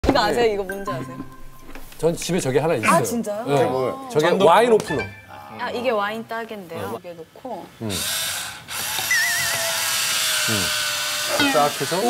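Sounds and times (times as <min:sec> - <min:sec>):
electric wine opener motor whirring: 0:08.0 - 0:12.0.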